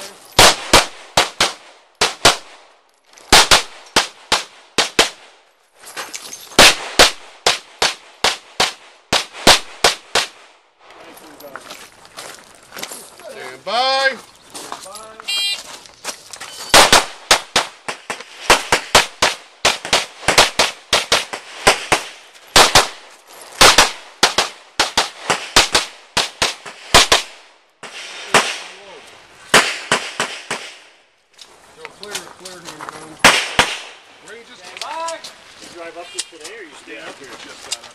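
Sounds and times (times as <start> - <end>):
pistol shots: 0.4 - 2.6, 3.3 - 5.4, 6.6 - 10.5, 16.7 - 23.0, 23.6 - 27.4, 29.5 - 30.9, 33.2 - 34.0
shot timer beep: 15.3 - 15.6.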